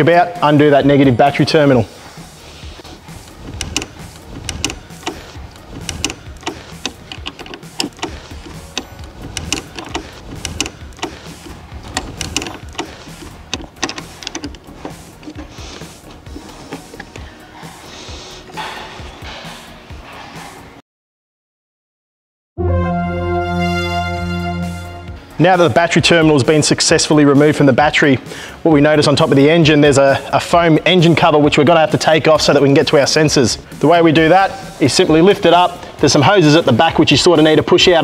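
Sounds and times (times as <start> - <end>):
background music: 0.0 - 20.8, 22.6 - 38.0
spanner clicking on metal nut: 3.5 - 17.2.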